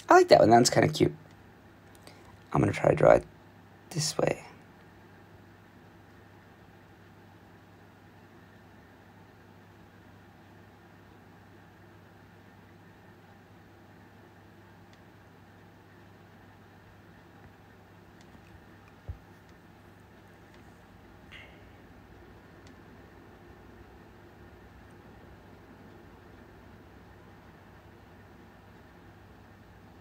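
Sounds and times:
low hum with hiss: 0.0s - 30.0s.

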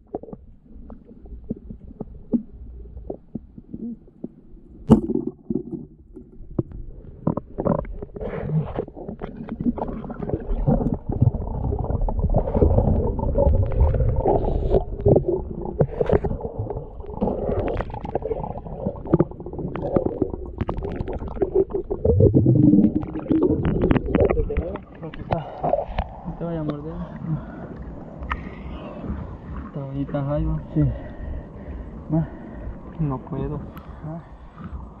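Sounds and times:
muffled underwater rumbling: 0.0s - 35.0s.

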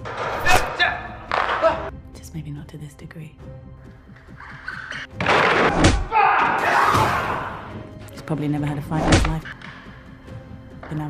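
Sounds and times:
person shouting: 6.1s - 7.7s.

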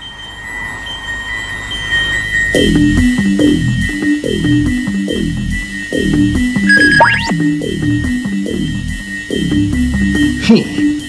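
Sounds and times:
high-pitched held tone: 6.7s - 7.4s.

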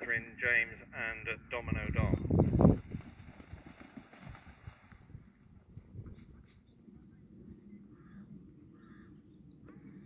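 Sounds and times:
wind on microphone: 1.6s - 7.8s.

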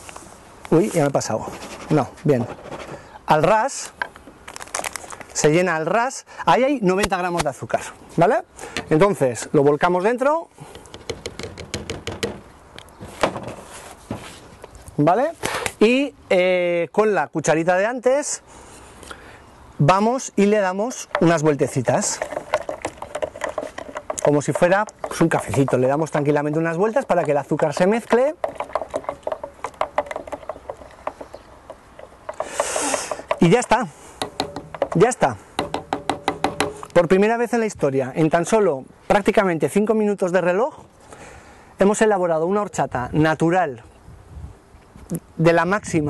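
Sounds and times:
lid knocking against jug: 22.2s - 36.9s.

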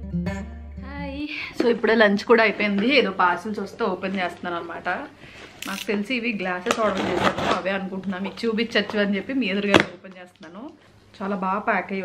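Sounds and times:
woman talking: 0.8s - 12.0s.

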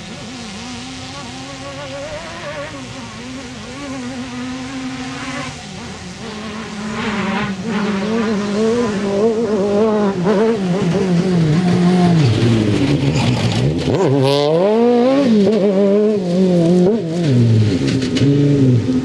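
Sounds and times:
rally car engine revving: 0.0s - 19.0s.

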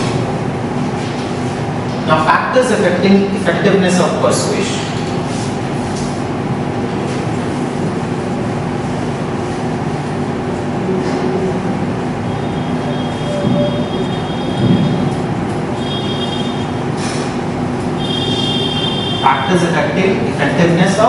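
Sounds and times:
rumbling noise with low hum: 0.0s - 21.0s.

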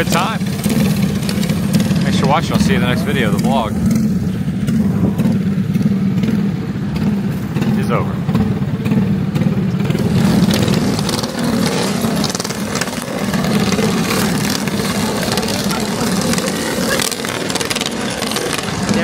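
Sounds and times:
motorcycle engines droning: 0.0s - 19.0s.

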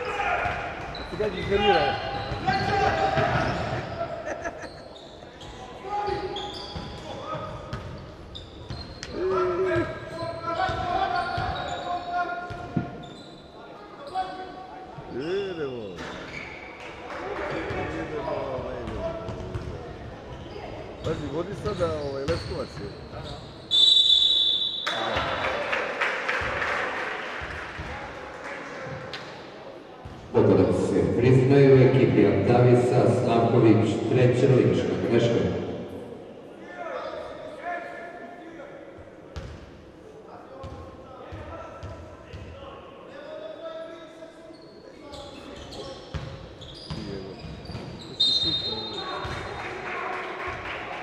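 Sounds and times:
basketball bouncing on wooden court: 18.8s - 19.7s
referee's whistle blast: 23.7s - 25.2s, 48.2s - 49.2s.

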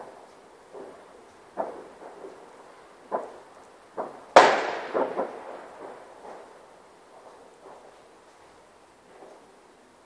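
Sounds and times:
fireworks banging: 0.0s - 9.7s.

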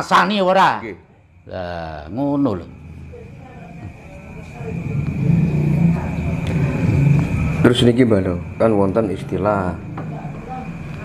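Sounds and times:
vehicle engine approaching: 1.8s - 11.0s.

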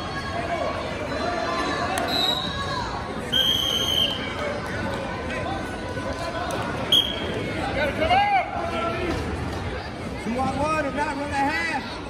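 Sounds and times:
whistle blast: 2.1s - 2.6s, 3.3s - 4.2s, 6.9s - 7.2s.

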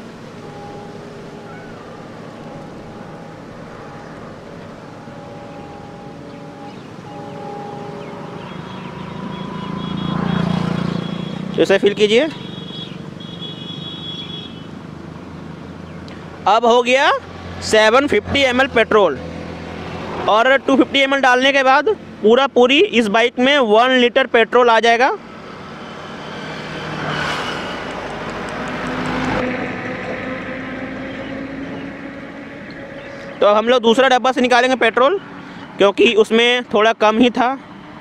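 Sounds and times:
thin high tone: 0.0s - 11.4s
low engine-like hum: 0.0s - 11.6s.

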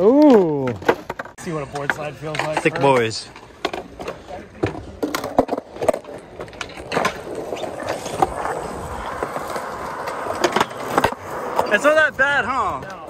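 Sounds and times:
skateboard clacks: 0.0s - 13.0s
skateboard wheels rolling on concrete: 0.0s - 13.0s.

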